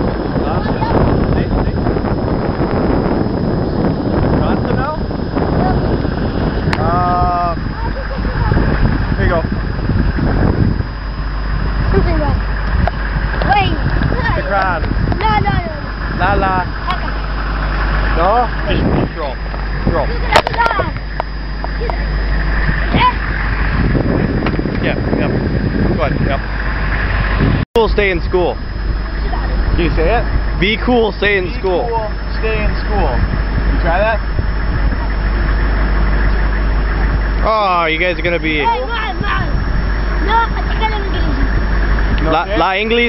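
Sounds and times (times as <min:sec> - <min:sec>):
truck engines idling: 0:00.0 - 0:43.0
children calling out: 0:20.1 - 0:21.0.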